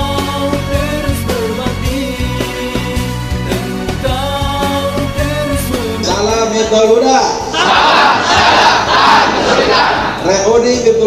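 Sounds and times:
music: 0.0s - 11.0s
crowd shouting and cheering: 6.6s - 10.6s.

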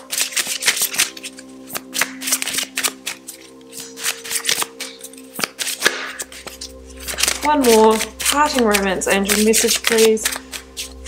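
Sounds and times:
cards being shuffled: 0.0s - 11.0s
sustained background music: 0.0s - 11.0s.

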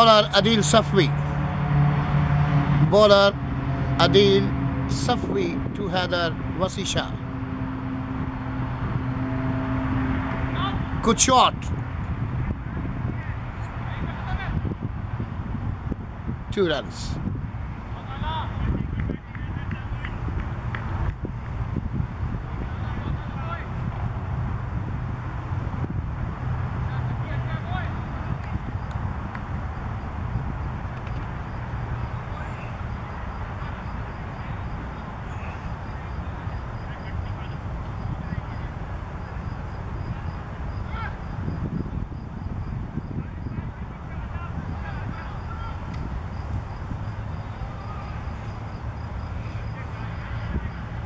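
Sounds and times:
distant voices calling out: 0.0s - 15.2s, 26.7s - 41.6s, 42.4s - 51.0s
low outdoor rumble: 0.0s - 51.0s
insect chirping: 29.6s - 51.0s.

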